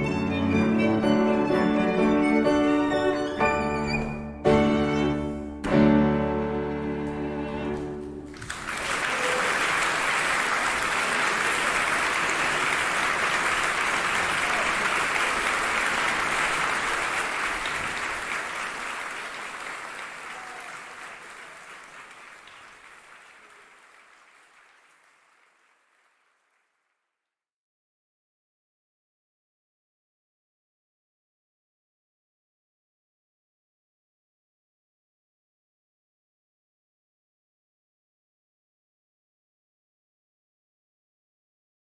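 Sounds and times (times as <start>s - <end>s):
audience applauding: 7.0s - 27.1s.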